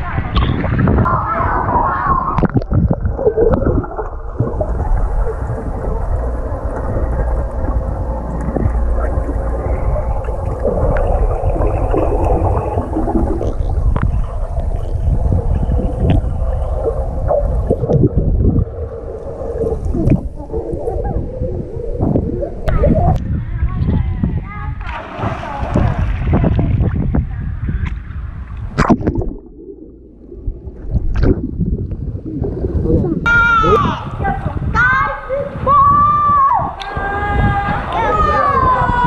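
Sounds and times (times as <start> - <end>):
muffled underwater rumble and gurgling: 0.0 - 39.0
faint underwater knocks and clicks: 6.7 - 12.4.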